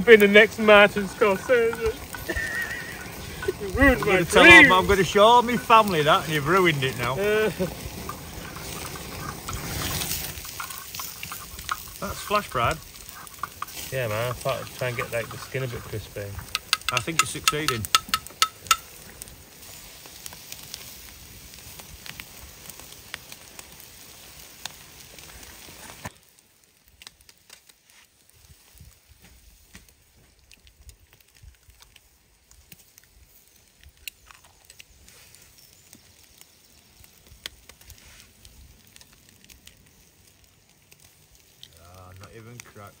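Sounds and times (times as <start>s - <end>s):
fire crackling: 0.0s - 43.0s
meat sizzling: 0.0s - 43.0s.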